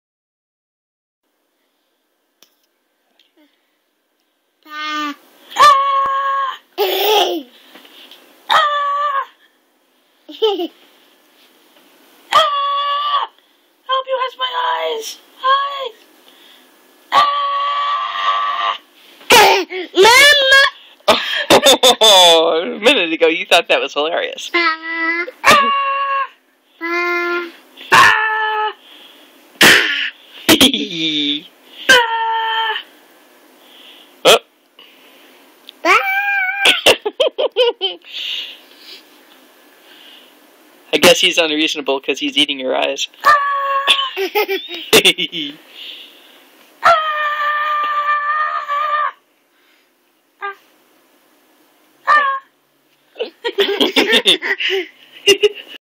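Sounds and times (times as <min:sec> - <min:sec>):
toddler high-pitched squeal: 0:04.7 - 0:06.6, 0:08.5 - 0:09.4, 0:12.3 - 0:13.3, 0:24.8 - 0:28.8, 0:35.8 - 0:36.8, 0:43.2 - 0:44.2, 0:46.8 - 0:49.2
baby squealing: 0:25.4 - 0:26.4, 0:27.9 - 0:28.8, 0:52.1 - 0:52.5.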